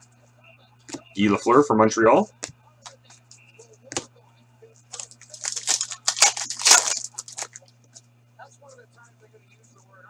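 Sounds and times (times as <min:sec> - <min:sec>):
foil wrapper tearing and crinkling: 0:04.9 - 0:07.6.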